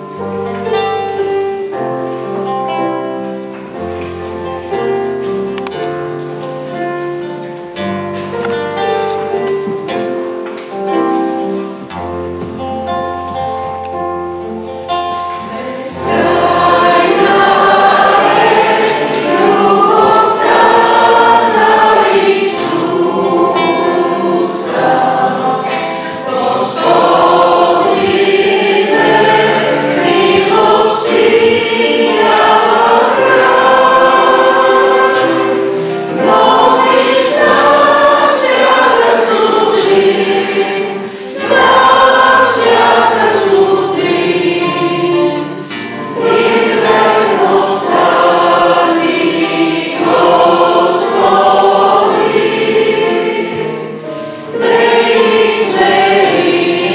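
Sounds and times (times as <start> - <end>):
acoustic guitar: 0.0 - 56.9
keyboard: 0.0 - 56.9
group singing a hymn: 15.4 - 56.9.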